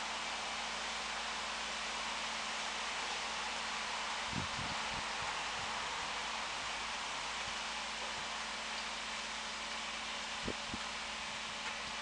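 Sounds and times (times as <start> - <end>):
outdoor hiss and rustle: 0.0 - 12.0.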